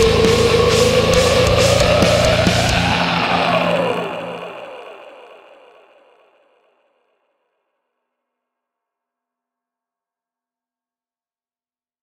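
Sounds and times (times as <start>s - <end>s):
distorted metal guitars chord: 0.0s - 5.5s.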